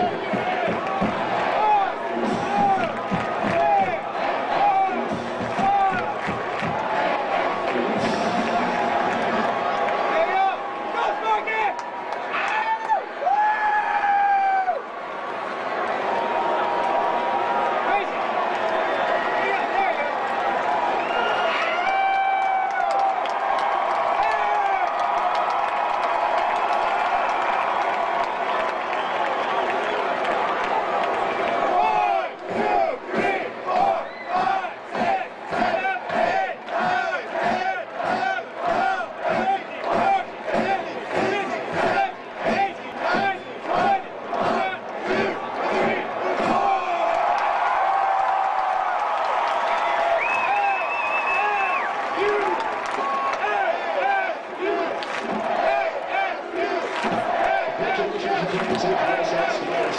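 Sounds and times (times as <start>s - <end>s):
crowd shouting in unison: 0.0s - 15.0s, 30.9s - 59.9s
crowd cheering and whooping: 0.0s - 37.2s, 44.7s - 59.9s.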